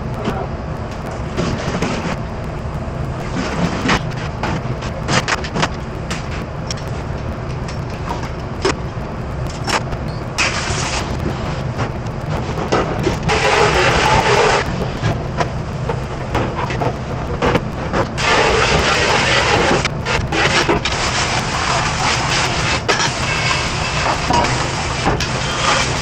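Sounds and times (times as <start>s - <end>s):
low machine hum: 0.0s - 26.0s.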